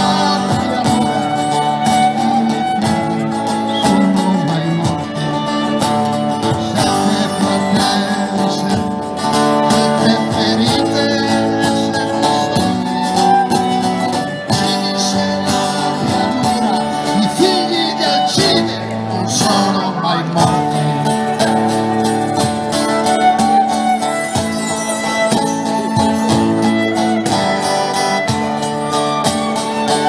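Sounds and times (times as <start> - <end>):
live band violin and guitar: 0.0 - 30.0.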